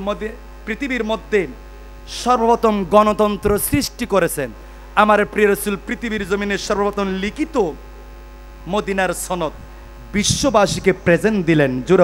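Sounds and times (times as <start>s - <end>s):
man speaking: 0.0s - 7.8s, 8.6s - 12.0s
low electrical mains hum: 0.0s - 12.0s.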